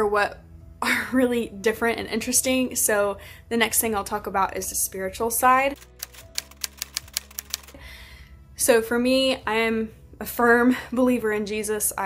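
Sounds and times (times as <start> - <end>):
typewriter key strikes: 5.8 - 7.8.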